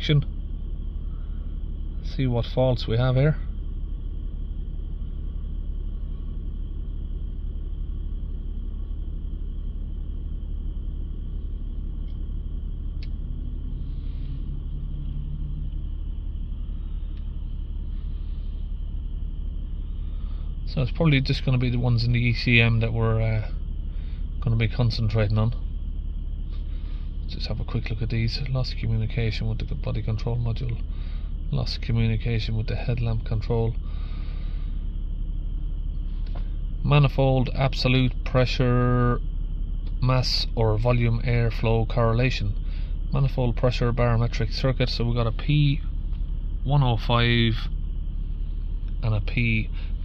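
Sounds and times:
car cabin rumble: 0:00.0 - 0:50.0.

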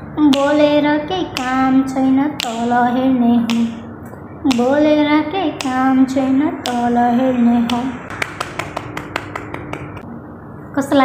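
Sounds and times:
hand clicks keeping a beat: 0:00.2 - 0:02.8, 0:03.4 - 0:03.8, 0:04.5 - 0:04.8, 0:05.5 - 0:06.0, 0:06.6 - 0:06.9, 0:07.6 - 0:10.0.

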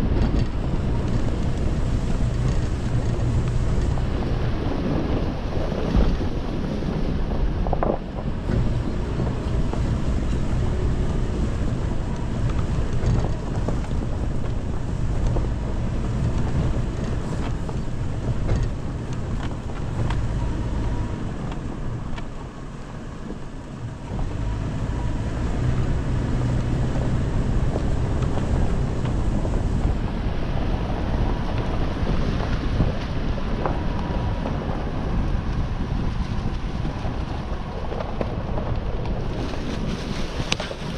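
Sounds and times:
tyres on dirt: 0:00.0 - 0:40.9
vehicle engine rumble: 0:00.0 - 0:40.9
wind buffeting microphone: 0:00.0 - 0:40.9.

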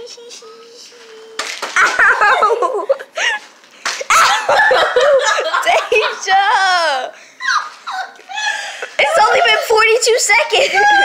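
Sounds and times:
girls squealing and laughing: 0:04.1 - 0:11.0.

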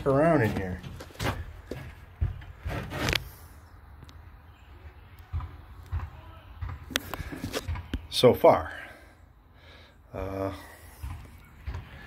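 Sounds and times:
footsteps on wood: 0:00.0 - 0:03.4, 0:10.9 - 0:12.0.

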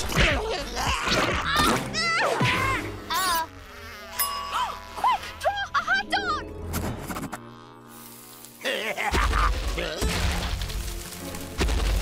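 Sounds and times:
warbling buzz-like cartoon tones: 0:00.8 - 0:10.0.

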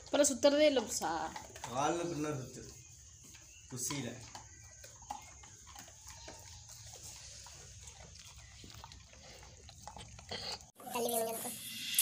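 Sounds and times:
dog chewing and licking: 0:00.0 - 0:11.1.

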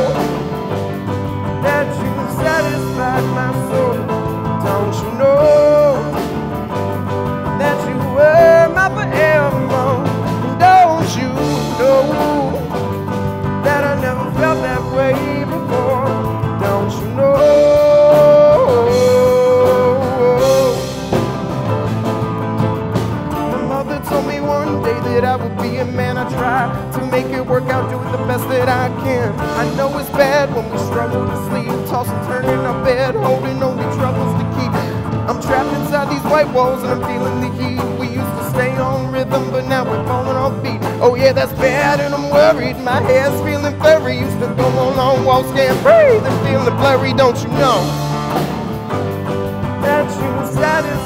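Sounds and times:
bass guitar: 0:00.0 - 0:51.0
electric guitar: 0:00.0 - 0:51.0
piano: 0:00.0 - 0:51.0.

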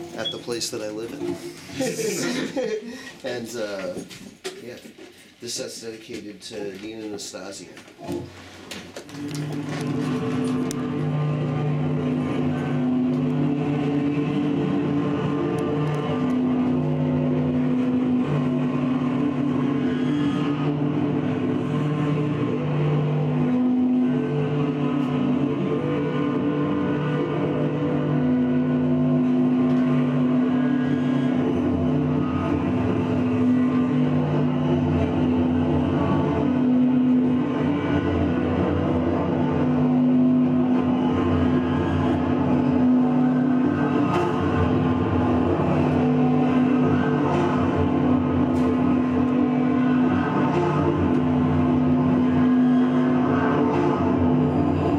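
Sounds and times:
electric guitar drone: 0:00.0 - 0:03.0, 0:08.9 - 0:54.9.

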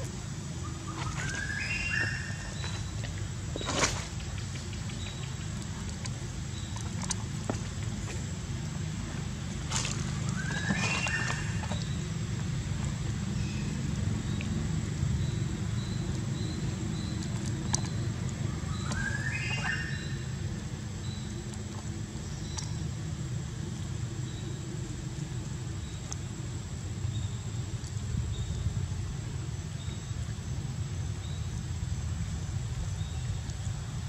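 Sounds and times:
low outdoor rumble: 0:00.0 - 0:34.0.

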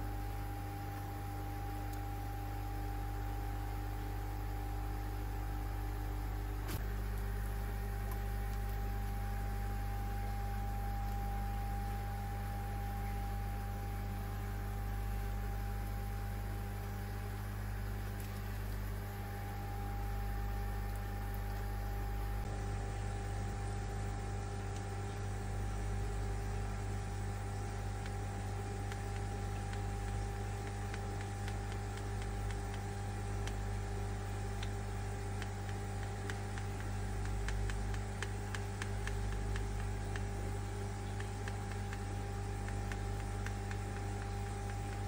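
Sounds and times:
light irregular ticks: 0:00.0 - 0:45.0
machine hum: 0:00.0 - 0:45.0.

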